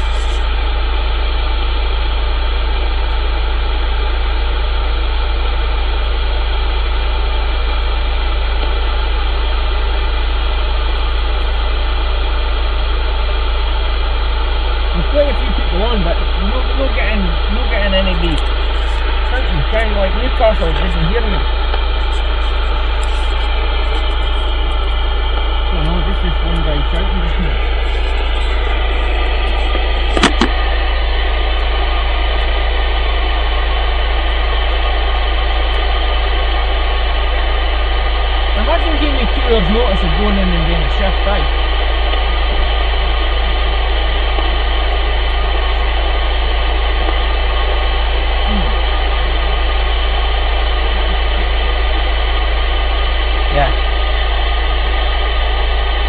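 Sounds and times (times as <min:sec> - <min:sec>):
faint radio voices: 0:00.0 - 0:00.8, 0:14.9 - 0:37.6, 0:38.4 - 0:42.2, 0:43.1 - 0:55.1
radio static: 0:00.0 - 0:13.4, 0:14.8 - 0:56.0
low hum: 0:00.0 - 0:56.0
sharp click: 0:29.7 - 0:30.6.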